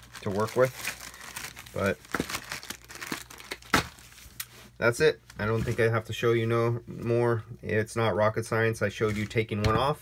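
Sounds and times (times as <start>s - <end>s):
plastic packaging crinkling: 0.0s - 4.6s.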